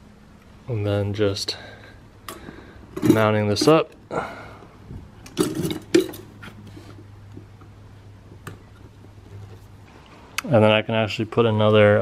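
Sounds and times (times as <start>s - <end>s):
metal bracket clinks and rattles: 5.4s - 6.3s.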